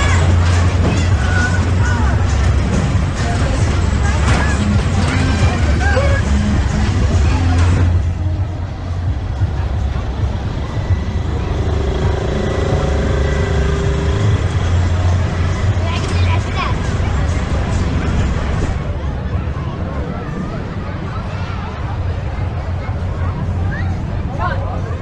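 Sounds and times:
low rumble: 0.0 - 24.3
music: 0.0 - 24.3
voices of passers-by: 0.0 - 25.0.

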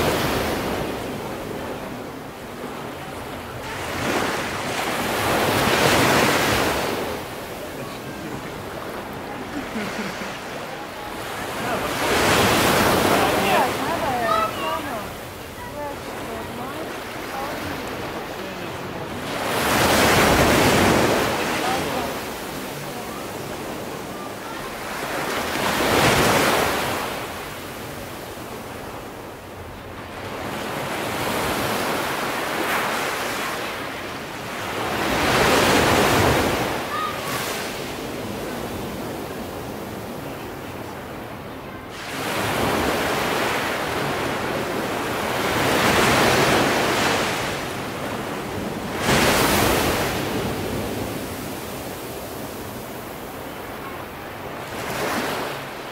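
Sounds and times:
low steady wash of water: 0.0 - 55.9
ocean surf breaking: 0.0 - 55.9.

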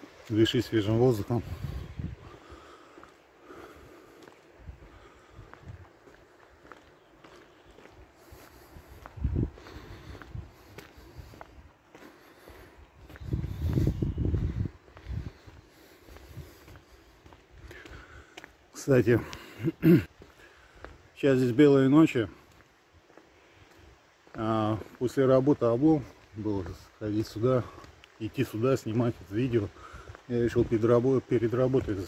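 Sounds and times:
footsteps on asphalt: 0.0 - 32.0.

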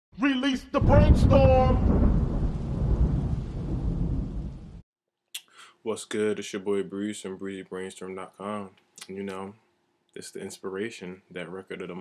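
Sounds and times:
thunder rumble: 0.7 - 4.8.

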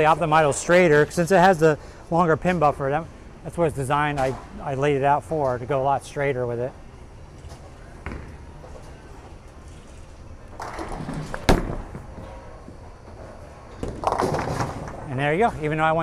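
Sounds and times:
bowling ball rolling rumble: 8.0 - 16.0
bowling ball thud: 10.5 - 12.8, 13.6 - 15.1
ball crashing into pins: 10.6 - 12.5, 13.7 - 15.1.

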